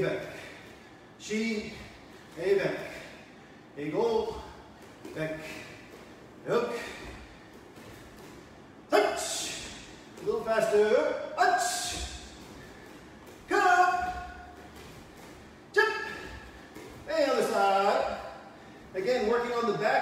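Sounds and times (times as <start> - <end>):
man shouting counts: 0.0 - 0.6, 3.8 - 5.8, 6.4 - 7.3, 8.9 - 20.0.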